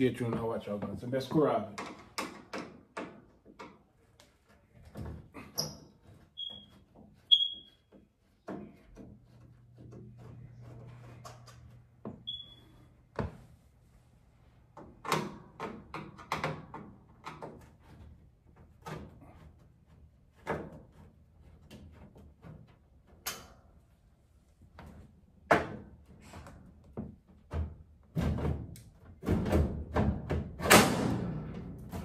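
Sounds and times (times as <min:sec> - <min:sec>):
brief high squeaks: 0:05.6 - 0:07.9.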